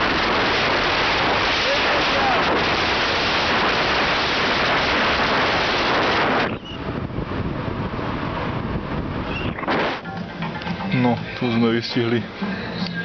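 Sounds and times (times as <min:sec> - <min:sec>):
wind rushing over microphone: 0:00.0 - 0:12.8.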